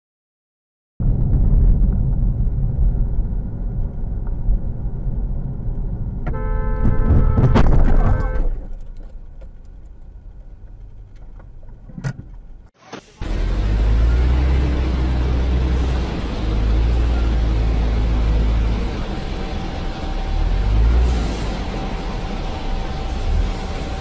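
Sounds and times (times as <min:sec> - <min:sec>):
faint low road hum: 0:01.0 - 0:24.0
diesel truck engine rumbling: 0:01.1 - 0:24.0.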